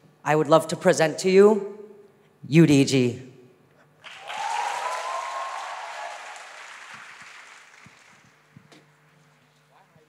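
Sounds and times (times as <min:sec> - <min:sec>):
audience cheering: 0:04.0 - 0:08.4
audience applauding: 0:04.0 - 0:08.6.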